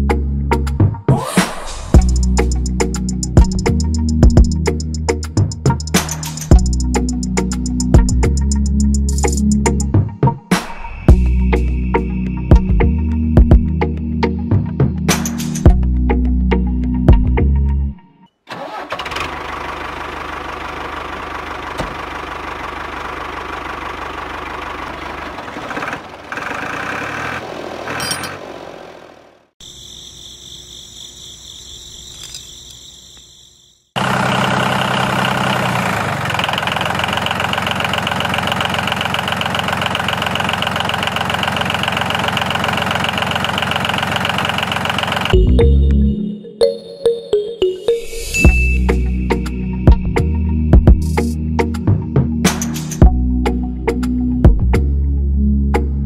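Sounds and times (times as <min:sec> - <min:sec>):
tractor-like engine running: 0:18.5 - 0:30.9, 0:32.0 - 0:45.5.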